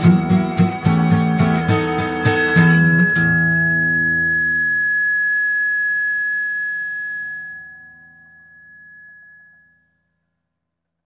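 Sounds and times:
guitar chord ringing out: 0.0s - 9.8s
high bell-like tone: 0.2s - 10.2s.

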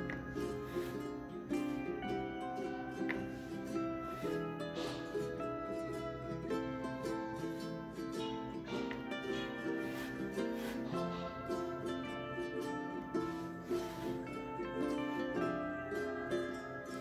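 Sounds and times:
plucked string melody: 0.0s - 17.0s.

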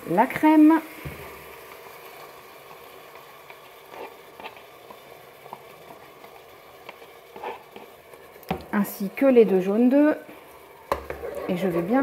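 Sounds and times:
bacon sizzling in fat: 0.0s - 12.0s
spoon tapping and scraping: 10.9s - 12.0s.

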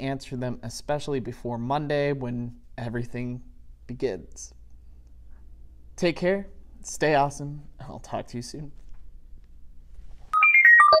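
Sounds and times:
faint room hum: 0.0s - 10.4s
electronic jingle descending notes: 10.4s - 11.0s.

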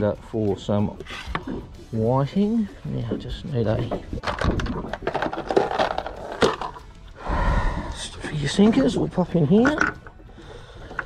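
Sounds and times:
fishing tackle knocking and clicking: 0.9s - 7.2s, 8.6s - 11.0s.

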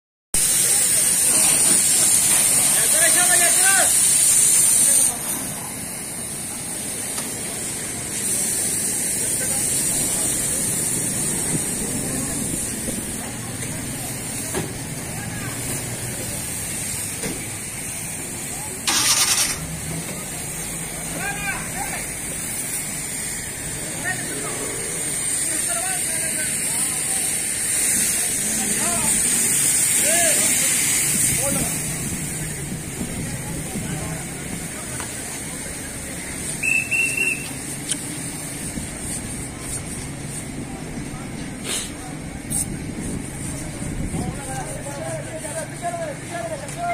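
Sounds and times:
brief loud hiss burst: 0.4s - 5.5s, 18.8s - 19.8s, 41.6s - 42.7s
steady high hiss: 0.4s - 43.9s
vehicle noise: 0.4s - 46.9s.

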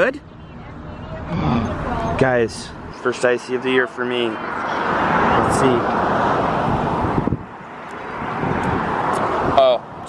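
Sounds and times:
passing road traffic: 0.0s - 10.0s.

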